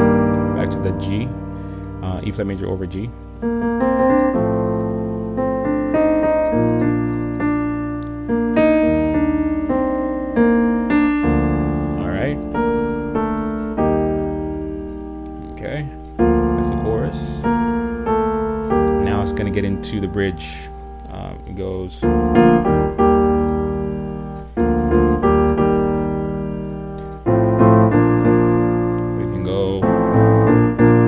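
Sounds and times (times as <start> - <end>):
piano playing slow block chords: 0.0 - 31.0.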